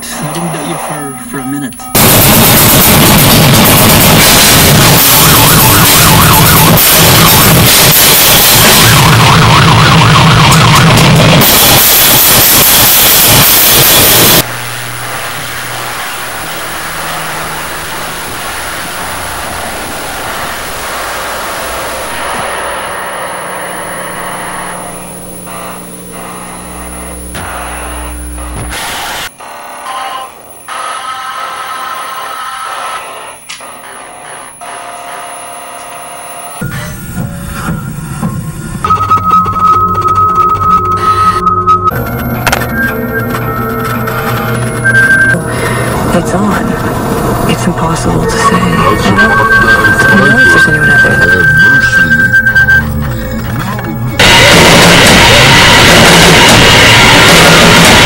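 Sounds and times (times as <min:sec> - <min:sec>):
steady electronic tone: 0:00.0 - 0:30.8, 0:33.1 - 0:58.0
loud distorted noise: 0:00.0 - 0:35.6, 0:36.2 - 0:58.0
static and electronic drones: 0:00.0 - 0:58.0
thin high whine: 0:00.0 - 0:58.0.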